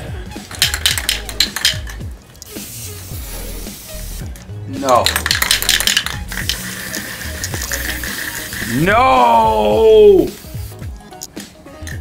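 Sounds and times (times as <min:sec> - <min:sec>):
background music with beat: 0:00.0 - 0:12.0
spray can hissing: 0:00.5 - 0:12.0.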